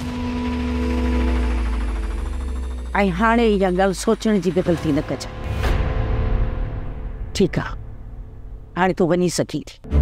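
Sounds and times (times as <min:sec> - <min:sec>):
deep sustained drone: 0:00.0 - 0:08.7.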